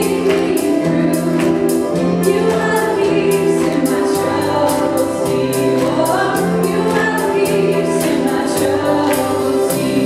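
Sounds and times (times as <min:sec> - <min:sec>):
group singing led by women: 0:00.0 - 0:10.0
live praise band music: 0:00.0 - 0:10.0.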